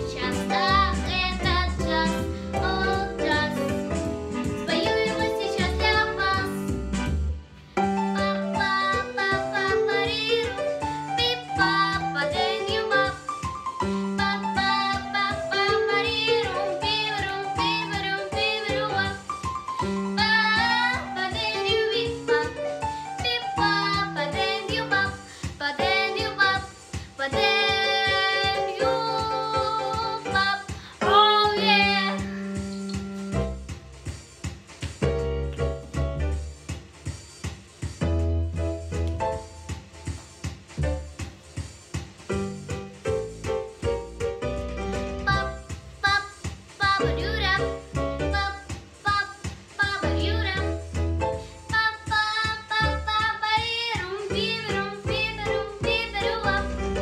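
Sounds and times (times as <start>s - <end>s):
girl singing with vibrato: 0.0s - 3.9s, 4.6s - 6.7s, 8.0s - 19.4s, 20.1s - 32.7s, 45.2s - 50.8s, 51.7s - 57.0s
jazzy backing track: 0.0s - 57.0s.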